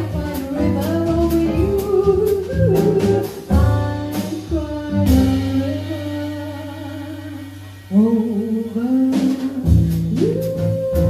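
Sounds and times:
drum kit: 0.0s - 11.0s
grand piano: 0.0s - 11.0s
upright double bass: 0.0s - 11.0s
woman singing jazz: 0.0s - 11.0s.

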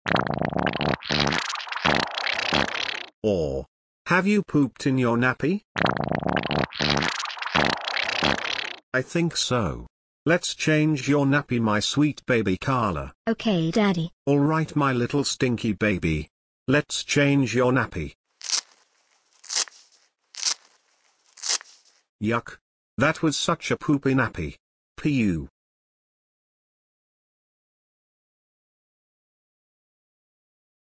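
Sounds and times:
cartoon fart sound effect: 0.0s - 3.1s, 5.8s - 8.8s.

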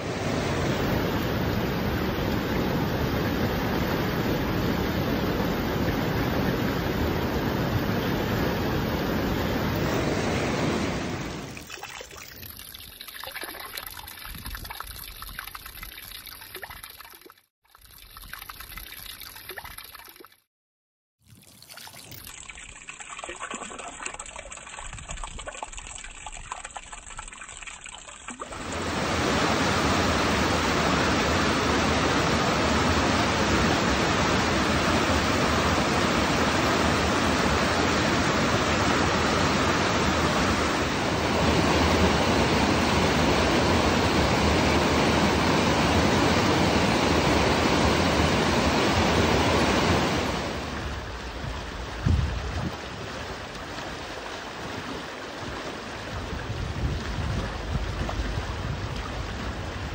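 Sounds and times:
rushing river water: 0.0s - 12.3s, 27.9s - 59.9s
water trickling into a pool: 11.5s - 20.5s, 21.2s - 28.8s.

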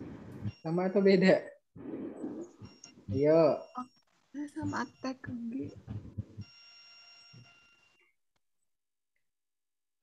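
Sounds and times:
person's voice: 4.4s - 6.3s
steady electronic tone: 4.6s - 8.0s.

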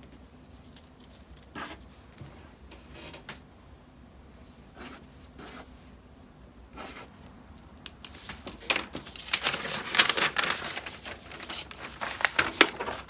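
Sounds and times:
paper rustling and crinkling: 8.1s - 13.0s.

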